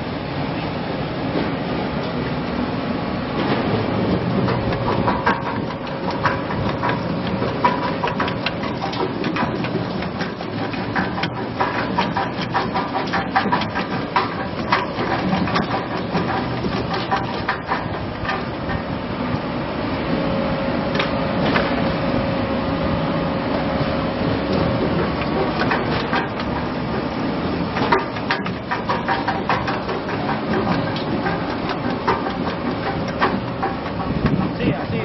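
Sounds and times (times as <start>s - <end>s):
machinery motor hum: 0.0s - 35.0s.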